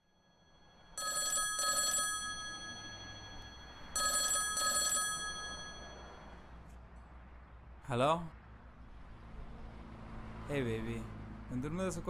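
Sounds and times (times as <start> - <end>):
phone ringing: 0.8 - 6.5.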